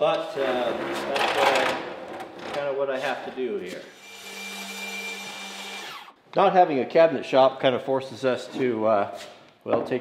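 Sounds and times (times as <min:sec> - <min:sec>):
table saw cutting plywood: 0:03.8 - 0:06.2.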